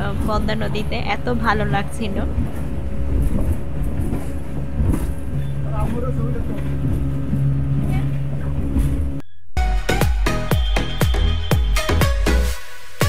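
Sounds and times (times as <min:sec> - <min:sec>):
motorboat engine droning: 0:00.0 - 0:09.2.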